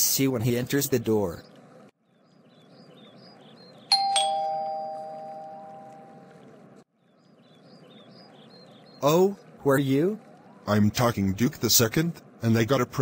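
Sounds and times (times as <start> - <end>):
two-note doorbell chime: 3.9 - 6.2.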